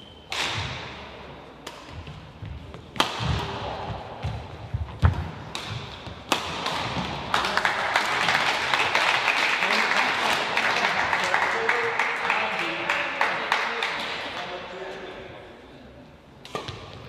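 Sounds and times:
shuttlecock hits: 0:01.6 - 0:07.3
spectators applauding: 0:07.3 - 0:14.0.

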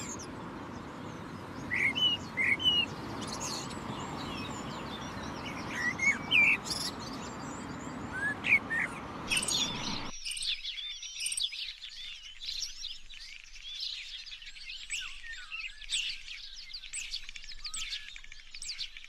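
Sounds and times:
blackbird singing: 0:00.0 - 0:19.0
small birds chirping: 0:00.0 - 0:19.0.

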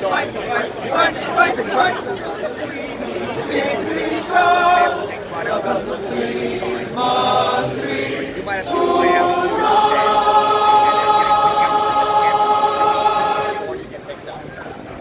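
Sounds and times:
men's choir singing in harmony: 0:02.6 - 0:13.9.

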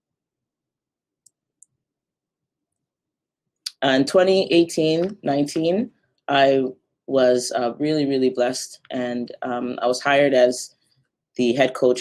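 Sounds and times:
woman's voice: 0:03.7 - 0:10.7, 0:11.4 - 0:12.0.

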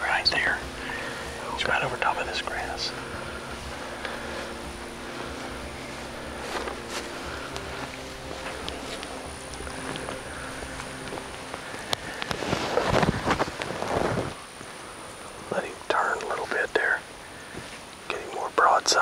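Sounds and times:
low mechanical hum: 0:00.0 - 0:18.7
rustling and scuffing: 0:02.8 - 0:14.4.

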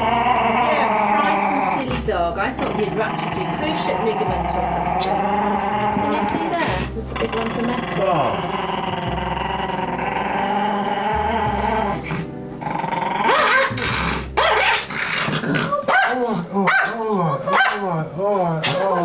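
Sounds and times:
background music: 0:00.0 - 0:19.0
dog yelping and whining: 0:14.4 - 0:19.0.

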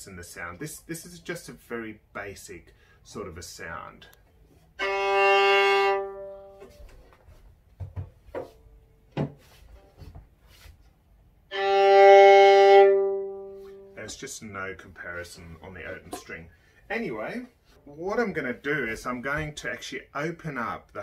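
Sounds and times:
violin bowed long notes: 0:04.8 - 0:06.8, 0:11.5 - 0:14.1.

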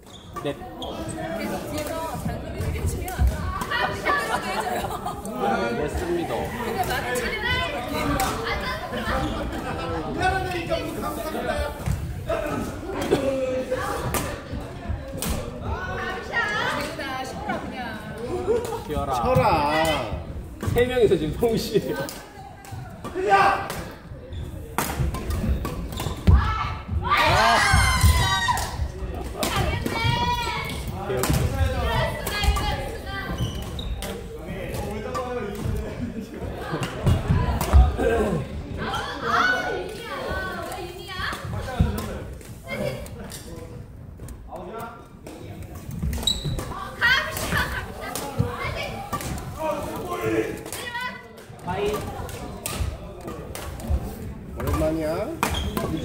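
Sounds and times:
people chattering in echoing hall: 0:00.0 - 0:56.0.

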